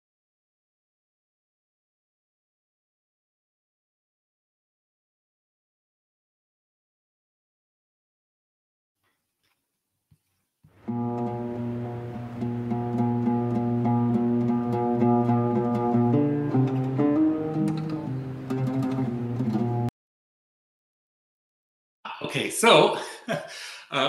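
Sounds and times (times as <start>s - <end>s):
solo lute improvisation: 10.8s - 19.9s.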